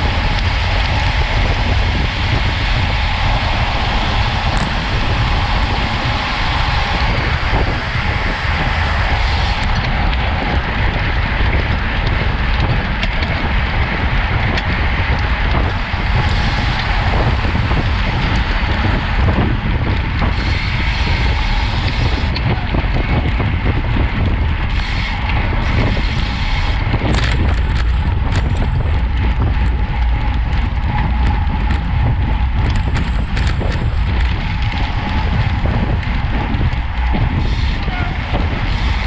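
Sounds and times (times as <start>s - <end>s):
tyre and road rumble: 0.0s - 39.0s
wind buffeting microphone: 0.0s - 39.0s.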